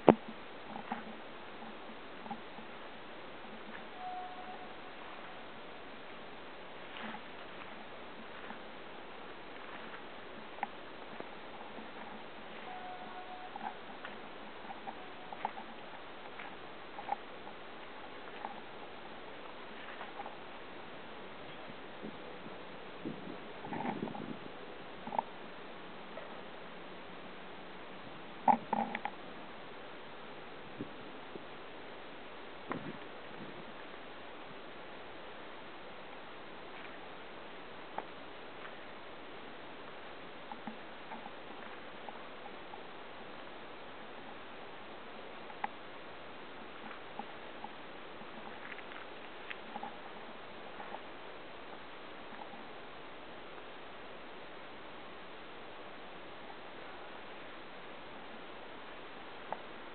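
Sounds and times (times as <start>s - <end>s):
steady hiss: 0.0s - 59.9s.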